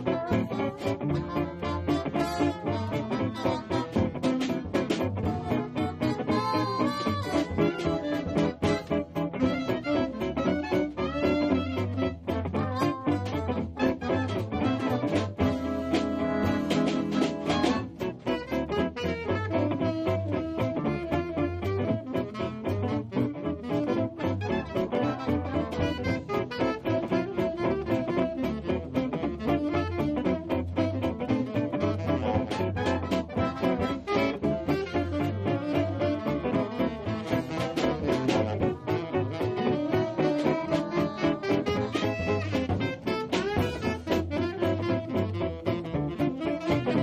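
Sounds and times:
swing band playing jazz: 0:00.0 - 0:47.0.

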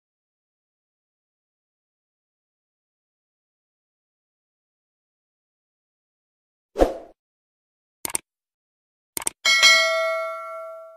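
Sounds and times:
quick mouse clicks: 0:08.0 - 0:08.2, 0:09.2 - 0:09.4
bright bell chime: 0:09.5 - 0:10.9.

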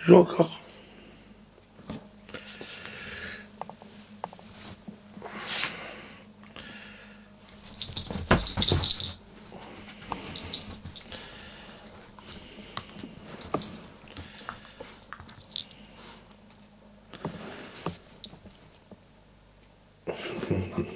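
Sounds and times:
dog collar bell jingling: 0:07.7 - 0:09.2, 0:10.2 - 0:11.1, 0:13.4 - 0:15.8.

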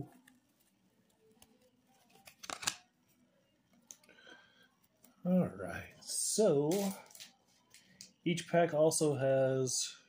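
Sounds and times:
faint handling sounds: 0:00.0 - 0:08.2.

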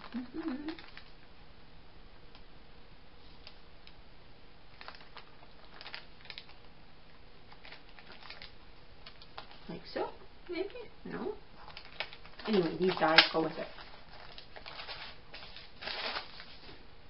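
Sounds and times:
plastic packaging crinkling: 0:00.0 - 0:01.2, 0:04.7 - 0:06.7, 0:07.5 - 0:09.9, 0:11.5 - 0:16.8.

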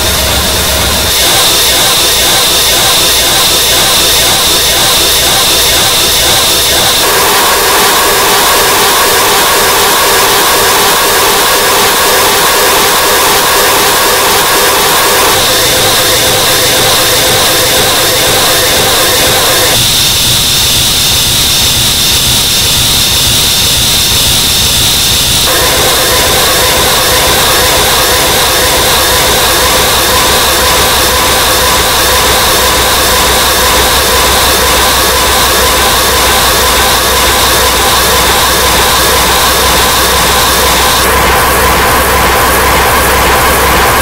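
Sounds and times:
harsh distorted noise: 0:00.0 - 0:44.0
high whine: 0:00.0 - 0:44.0.

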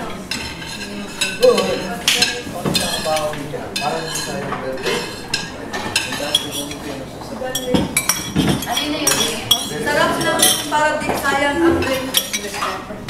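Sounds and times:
spoon and plates clinking: 0:00.0 - 0:12.9.

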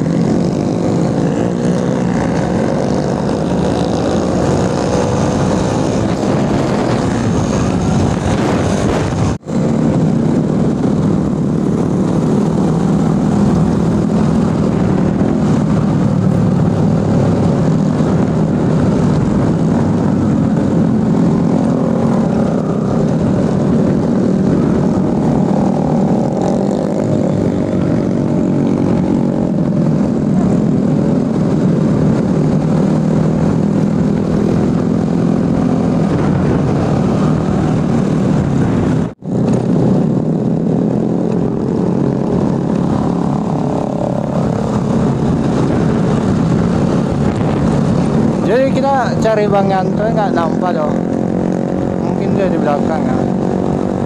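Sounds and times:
motorcycle engine running: 0:00.0 - 0:54.0
other motorcycles riding: 0:00.0 - 0:54.0
wind rushing over microphone: 0:00.0 - 0:54.0.

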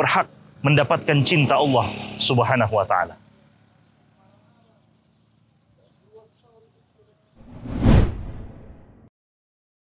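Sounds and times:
whoosh sound effect: 0:07.4 - 0:08.8.

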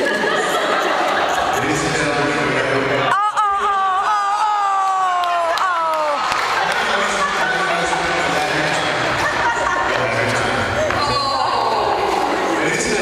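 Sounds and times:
crowd talking and laughing: 0:00.0 - 0:13.0.

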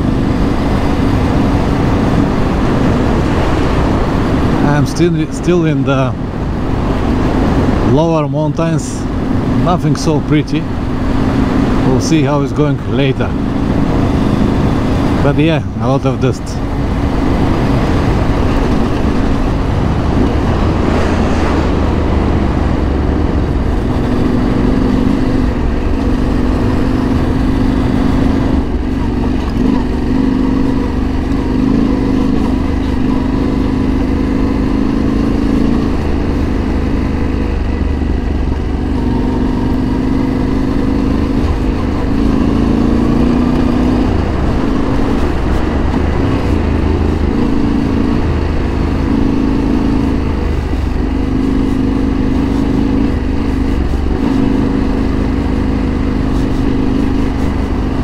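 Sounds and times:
motorcycle engine running: 0:00.0 - 0:58.0
road and wind rumble: 0:00.0 - 0:58.0.

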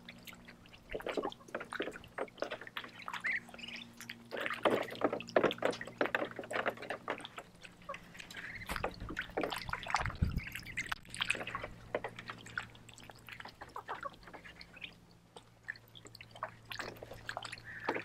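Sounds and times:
ducks splashing in shallow water: 0:00.0 - 0:18.0.

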